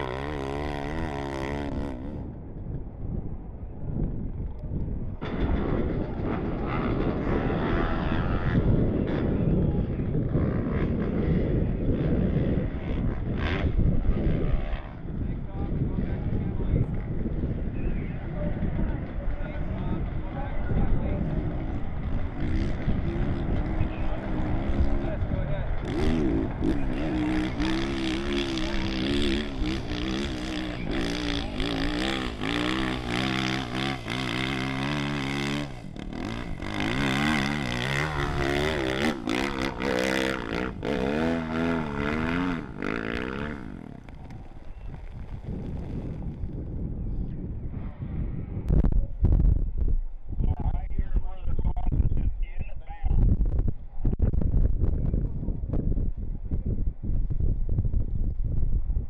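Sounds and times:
dirt bike engine revving: 0:00.0 - 0:02.2, 0:05.2 - 0:15.2, 0:18.5 - 0:46.6.

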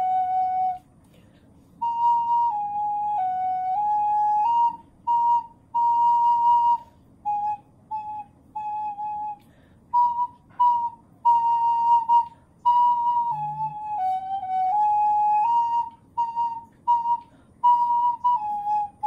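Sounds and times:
recorder playing a simple tune: 0:00.0 - 0:00.8, 0:10.0 - 0:19.0.

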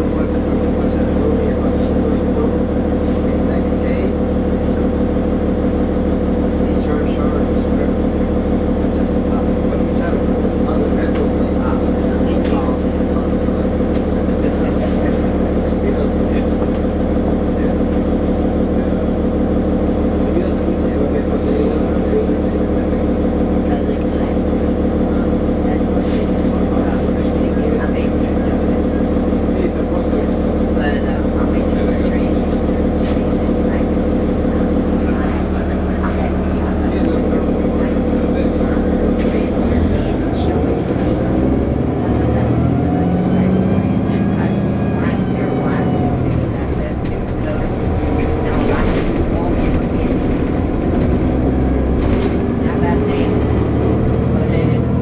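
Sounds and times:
bus diesel engine idling: 0:00.0 - 0:55.0.

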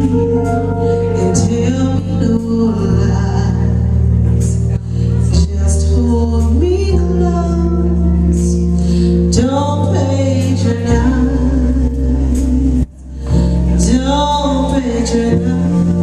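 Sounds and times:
woman singing with vibrato: 0:00.0 - 0:04.1, 0:05.1 - 0:16.0
keyboard: 0:00.0 - 0:16.0
upright bass: 0:00.0 - 0:16.0.

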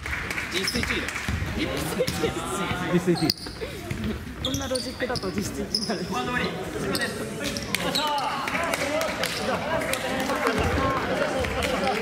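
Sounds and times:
players chattering: 0:00.5 - 0:12.0.

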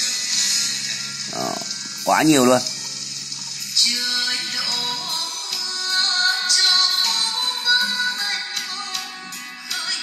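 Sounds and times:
music from car stereo: 0:00.0 - 0:10.0.

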